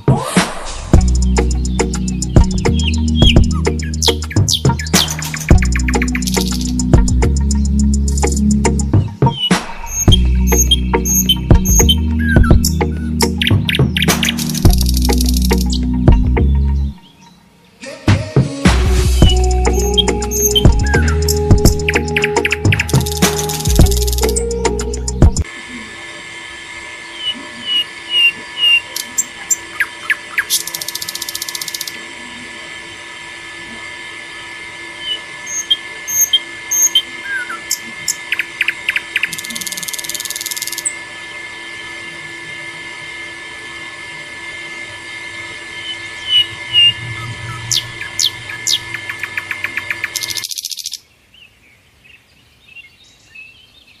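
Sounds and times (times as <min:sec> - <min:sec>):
birds chirping: 0:00.9 - 0:18.5, 0:19.1 - 0:25.4, 0:27.0 - 0:42.8, 0:43.6 - 0:54.0
water pump whining: 0:19.3 - 0:50.3.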